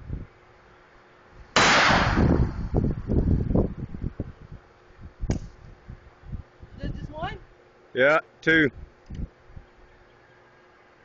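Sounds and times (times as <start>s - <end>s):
handgun shot echoing: 1.6s - 2.4s.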